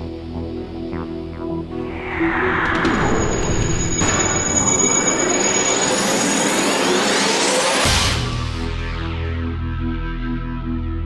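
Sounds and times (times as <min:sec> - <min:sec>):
rising noisy whoosh: 0:01.7 - 0:07.0.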